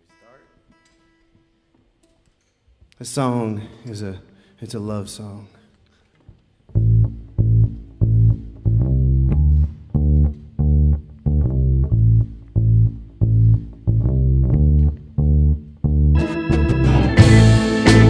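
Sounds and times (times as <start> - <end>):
electric bass guitar plucking: 6.7 - 18.0.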